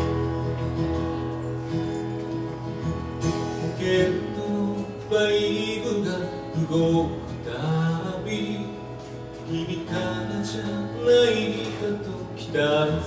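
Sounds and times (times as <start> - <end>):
acoustic guitar: 0.0 - 13.0.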